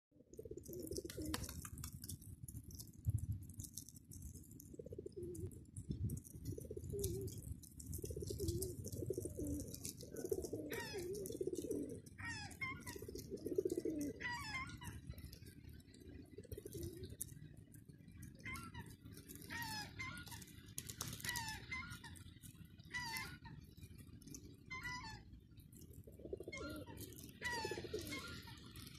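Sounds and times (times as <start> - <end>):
pigeons cooing: 0.2 - 2.9, 3.6 - 28.9
high falling bird calls: 18.2 - 28.9.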